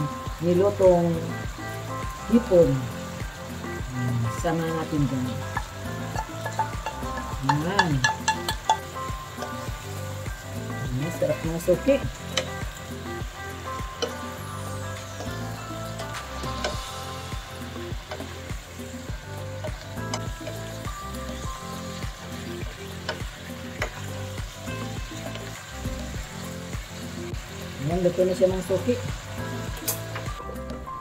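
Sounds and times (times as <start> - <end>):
background music with beat: 0.0 - 31.0
food sizzling in a pan: 0.0 - 31.0
spoon stirring food: 5.5 - 9.7.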